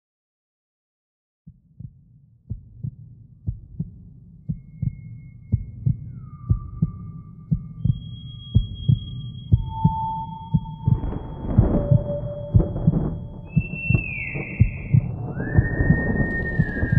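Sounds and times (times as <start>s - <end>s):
heartbeat thumps: 1.5s - 16.9s
eerie high gliding tones: 7.2s - 16.9s
low drone: 9.0s - 16.9s
hissing swell: 10.9s - 16.9s.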